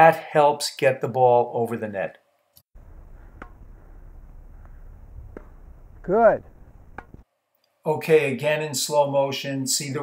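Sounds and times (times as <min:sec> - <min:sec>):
low outdoor rumble: 0:02.8 - 0:07.2
racket striking ball: 0:02.8 - 0:07.2
tennis ball bouncing: 0:02.8 - 0:07.2.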